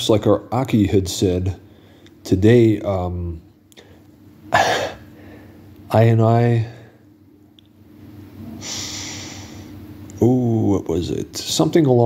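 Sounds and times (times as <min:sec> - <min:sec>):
man breathing: 0:01.7 - 0:02.1, 0:05.1 - 0:05.7, 0:08.6 - 0:09.8.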